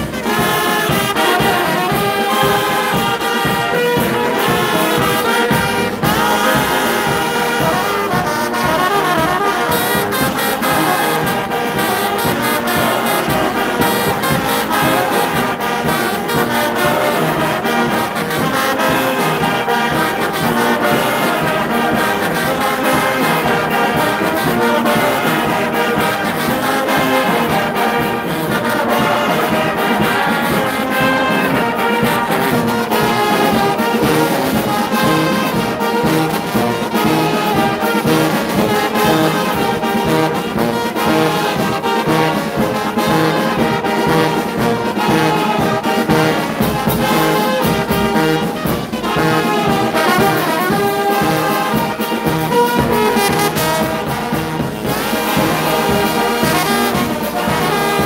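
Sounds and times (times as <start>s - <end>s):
brass band playing: 0.0s - 58.0s.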